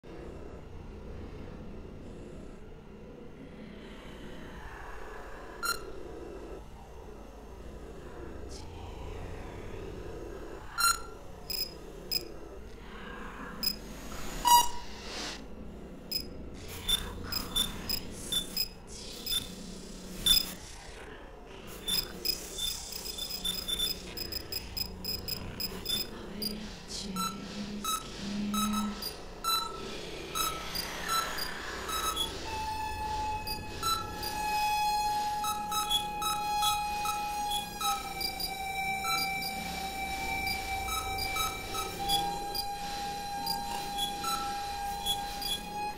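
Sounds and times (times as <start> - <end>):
repeating electronic bleeps: 10.8 - 12.2, 16.9 - 19.5, 20.3 - 20.6, 21.9 - 26.1, 27.2 - 32.4, 33.2 - 34.4, 35.4 - 42.7
sharp electronic clicks and blips: 10.8 - 12.3, 16.9 - 19.5, 20.2 - 20.6, 21.8 - 26.1.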